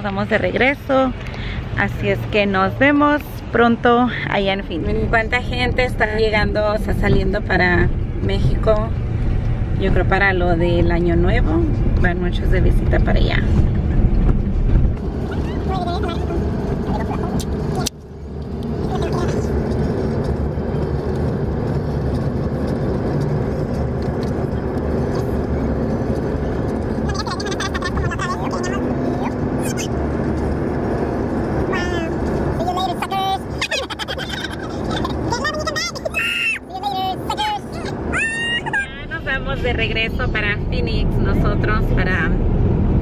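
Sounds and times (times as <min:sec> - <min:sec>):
road and engine noise in cabin: 0:00.0 - 0:43.0.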